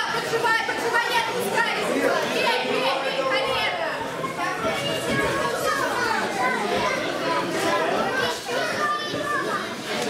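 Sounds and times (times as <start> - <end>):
crowd of children shouting: 0.0 - 10.0.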